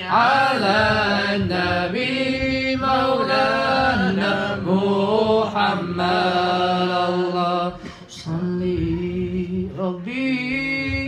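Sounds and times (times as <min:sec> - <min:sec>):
men chanting together: 0:00.0 - 0:09.4.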